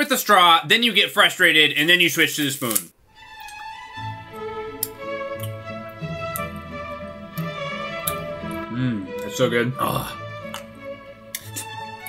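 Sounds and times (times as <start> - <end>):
slow bowed string music: 3.1 - 12.0.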